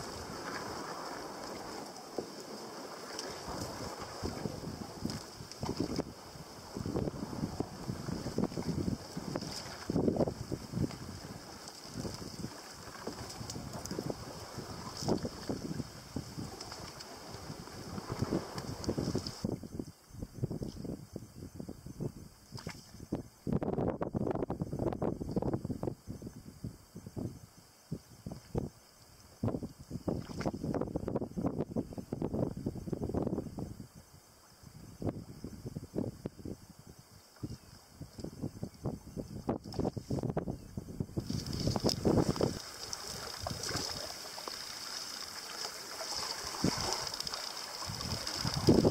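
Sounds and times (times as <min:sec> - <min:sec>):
water lapping around canoe: 0:00.0 - 0:19.4, 0:30.1 - 0:30.8, 0:41.2 - 0:48.9
wind buffeting microphone: 0:02.6 - 0:28.8, 0:29.4 - 0:34.0, 0:34.6 - 0:44.3, 0:46.0 - 0:48.9.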